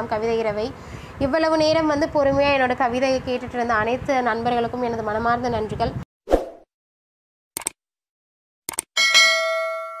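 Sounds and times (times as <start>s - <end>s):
sharp mouse clicks: 7.6s - 7.8s, 8.7s - 8.9s
bright bell ding: 9.0s - 10.0s.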